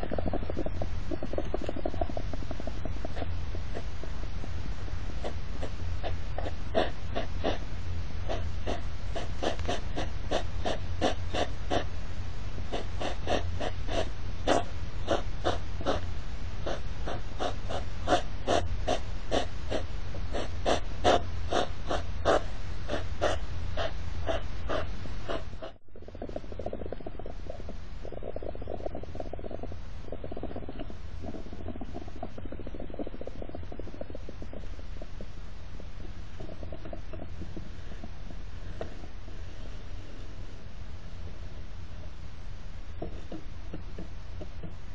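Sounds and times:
hedgehogs snorting: 0:00.0 - 0:40.6
steady low hum: 0:00.0 - 0:44.9.

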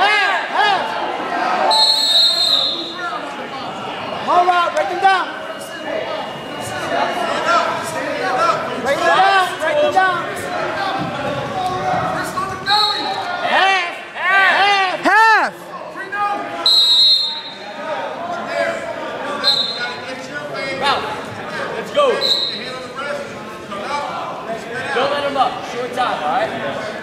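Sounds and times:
spectators and coaches shouting: 0:00.0 - 0:20.1
short high whistle tones: 0:01.7 - 0:03.1.

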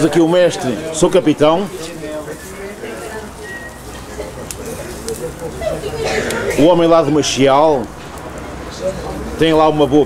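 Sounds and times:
low background chatter: 0:00.0 - 0:10.0
meat sizzling on grill: 0:00.1 - 0:09.6.

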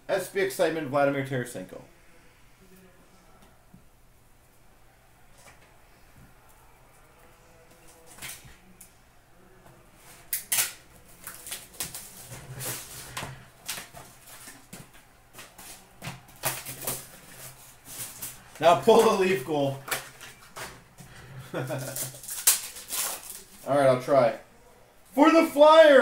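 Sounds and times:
card packs rustling and crinkling: 0:10.2 - 0:24.0.

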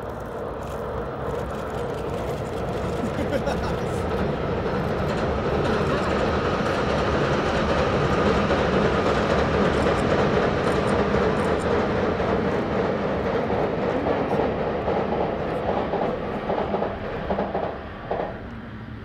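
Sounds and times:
train wheels rumbling on bridge: 0:00.0 - 0:19.0.

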